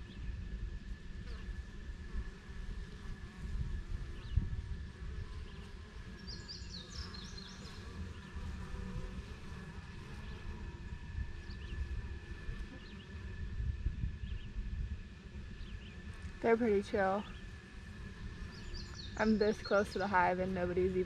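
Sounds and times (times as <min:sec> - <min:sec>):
bees buzzing: 0:01.2 - 0:13.7, 0:14.3 - 0:21.0
low uneven rumble: 0:02.0 - 0:21.0.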